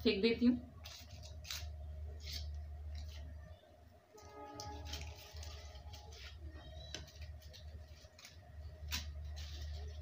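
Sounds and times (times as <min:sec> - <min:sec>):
faint music: 0:00.0 - 0:10.0
paper crinkling: 0:00.8 - 0:03.6, 0:04.2 - 0:10.0.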